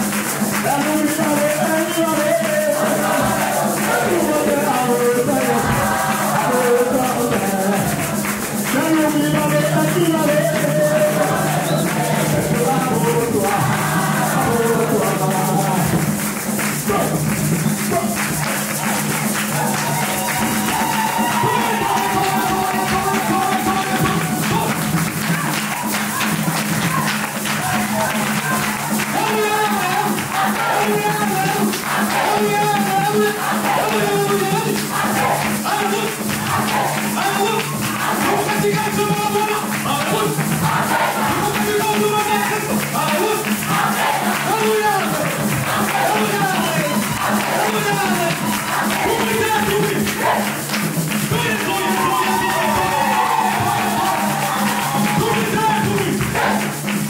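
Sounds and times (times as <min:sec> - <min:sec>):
congregation singing: 0:00.0 - 0:57.0
hand drums and percussion: 0:00.0 - 0:57.0.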